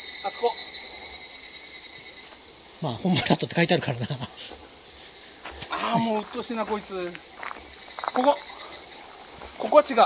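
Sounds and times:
insects shrilling: 0:00.0 - 0:10.0
man's voice: 0:02.8 - 0:04.7, 0:05.5 - 0:07.2, 0:09.6 - 0:10.0.

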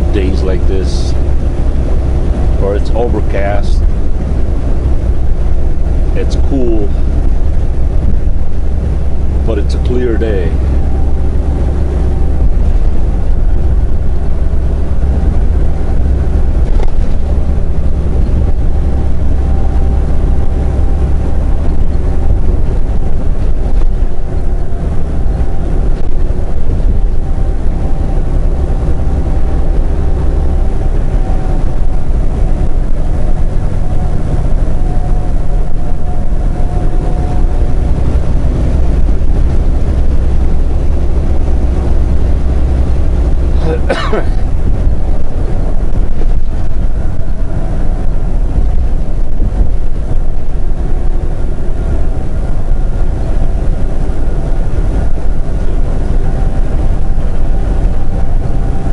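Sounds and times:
faint steady whine: 0:00.0 - 0:58.9
road noise: 0:00.0 - 0:58.9
truck diesel engine drone: 0:00.0 - 0:58.9.

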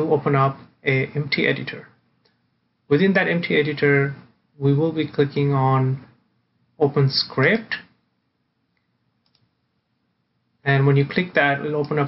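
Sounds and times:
computer mouse clicks: 0:08.7 - 0:09.6.

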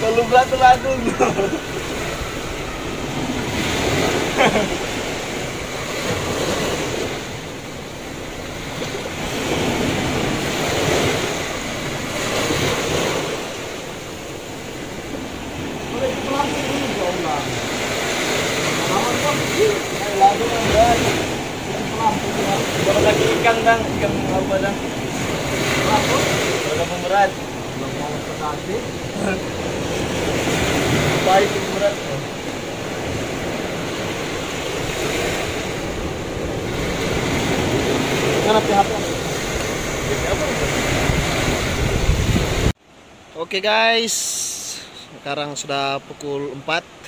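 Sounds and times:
surf washing onto sand: 0:00.0 - 0:42.8, 0:43.4 - 0:47.0
wind on microphone: 0:00.0 - 0:42.8.

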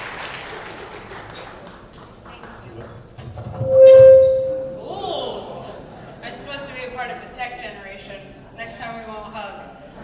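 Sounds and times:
microphone feedback squeal: 0:03.5 - 0:04.9.

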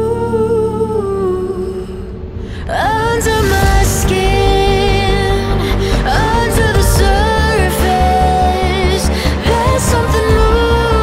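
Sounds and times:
sustained backing chord: 0:00.0 - 0:11.0.

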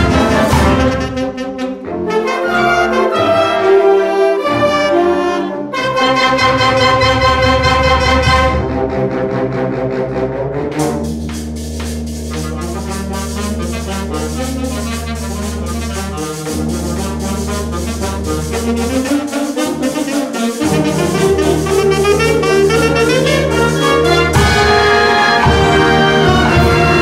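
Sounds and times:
flutes and clarinets: 0:00.0 - 0:08.9, 0:12.3 - 0:27.0
brass: 0:00.0 - 0:27.0.

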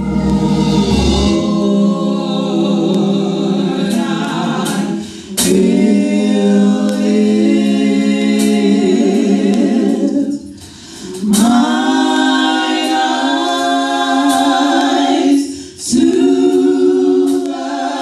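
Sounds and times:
women singing a cappella harmony: 0:00.0 - 0:18.0.

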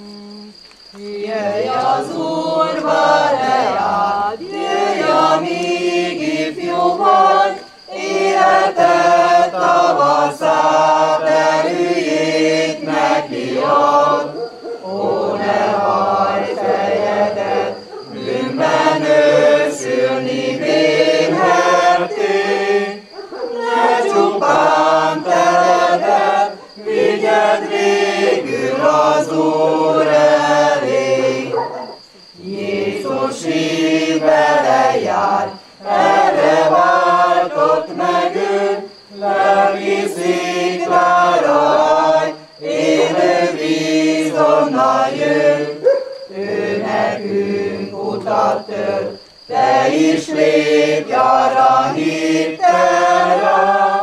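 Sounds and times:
group singing a hymn unaccompanied: 0:00.0 - 0:54.0.

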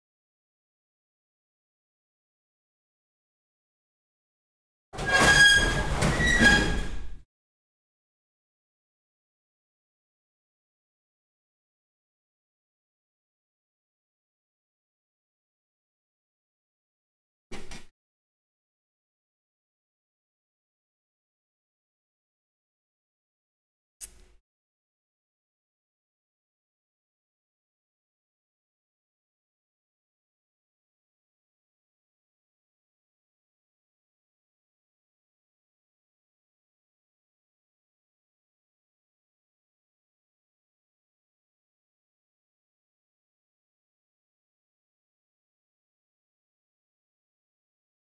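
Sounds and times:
sharp click: 0:24.0 - 0:24.4.

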